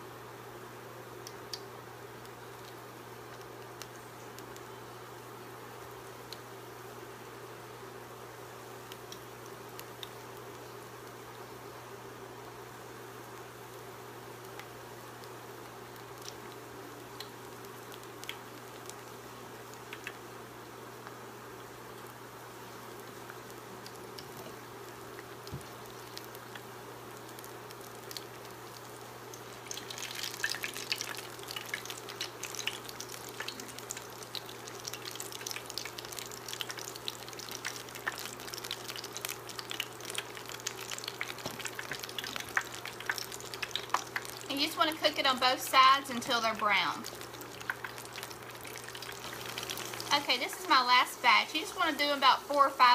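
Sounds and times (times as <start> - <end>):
food deep-frying in oil: 0.0 - 52.9.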